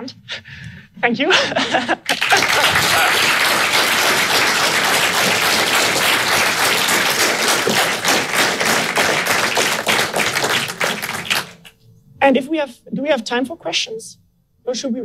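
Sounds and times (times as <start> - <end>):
audience applauding: 2.1 - 11.7.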